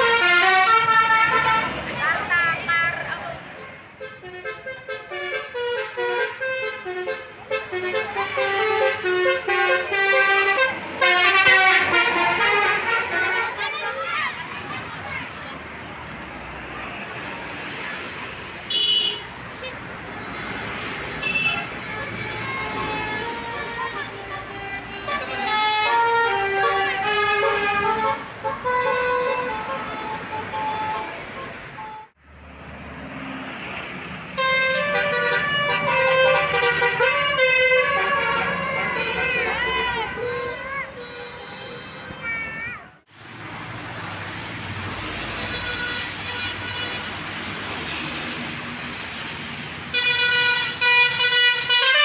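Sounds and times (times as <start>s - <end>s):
musical air horns playing tunes: 0.0s - 1.8s, 4.0s - 14.0s, 21.2s - 32.1s, 34.3s - 42.2s, 49.9s - 52.0s
road traffic noise: 0.0s - 52.0s.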